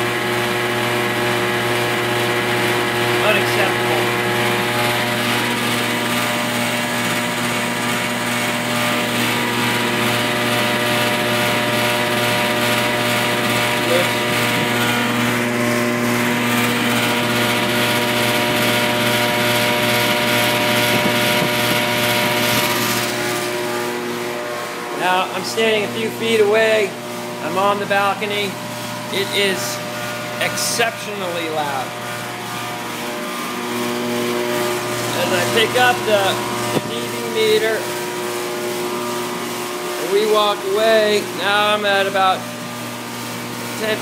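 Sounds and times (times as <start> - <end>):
heat pump loud mechanical hum: 0.0 - 44.0.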